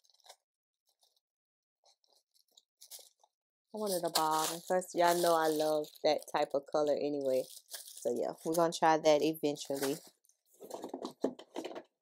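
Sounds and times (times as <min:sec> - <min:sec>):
packaging card crinkling: 0:02.0 - 0:08.6, 0:09.6 - 0:11.7.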